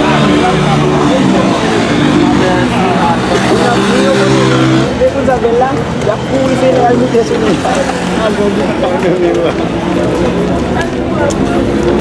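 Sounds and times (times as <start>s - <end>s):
loud steady engine drone: 0.0s - 12.0s.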